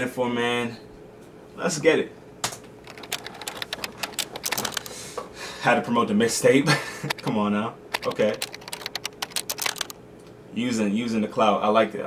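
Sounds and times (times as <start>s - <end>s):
typing on computer keyboard: 2.8s - 5.0s, 7.1s - 9.9s.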